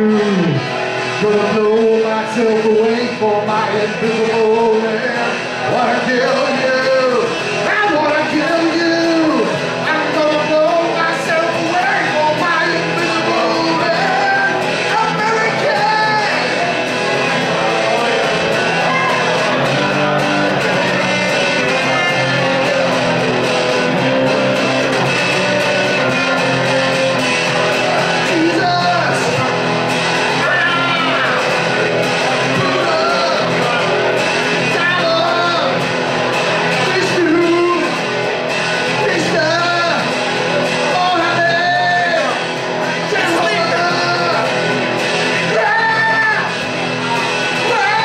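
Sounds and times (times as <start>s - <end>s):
man singing into a microphone: 0.0s - 16.7s, 28.0s - 29.6s, 30.3s - 35.9s, 36.6s - 38.0s, 38.8s - 44.7s, 45.3s - 46.7s, 47.5s - 48.0s
guitar strumming chords: 0.0s - 48.0s.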